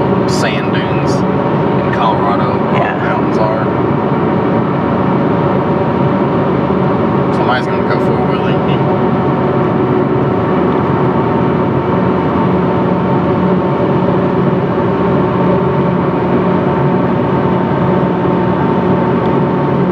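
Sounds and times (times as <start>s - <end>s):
low hum: 0.0s - 19.9s
road and engine drone: 0.0s - 19.9s.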